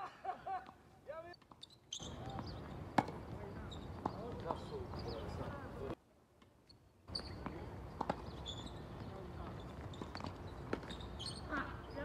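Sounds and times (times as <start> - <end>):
ball bouncing on hard court: 1.4 - 5.0, 7.1 - 11.4
racket hitting tennis ball: 1.5 - 3.3, 7.3 - 8.4.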